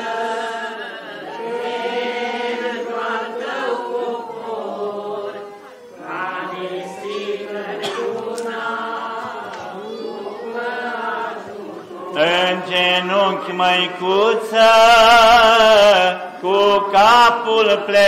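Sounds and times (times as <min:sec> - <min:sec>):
man chanting through a microphone: 0:12.2 - 0:18.0.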